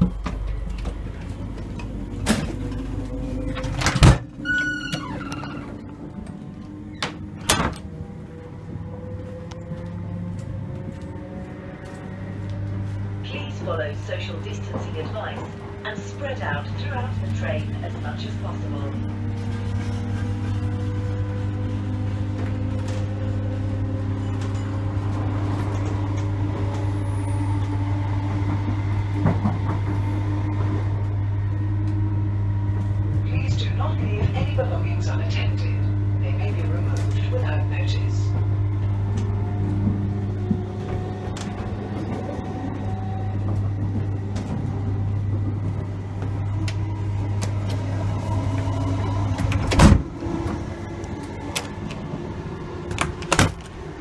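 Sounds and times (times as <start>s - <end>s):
electric train traction hum: 0.0s - 54.0s.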